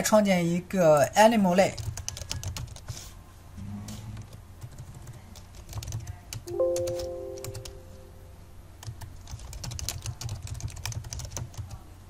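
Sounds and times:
computer keyboard typing: 1.6s - 3.0s, 4.2s - 7.8s, 8.8s - 11.8s
computer alert chime: 6.5s - 8.4s.

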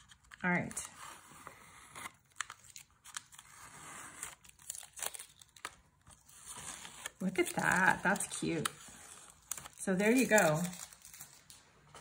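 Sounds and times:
tape peeling off paper: 1.9s - 11.6s.

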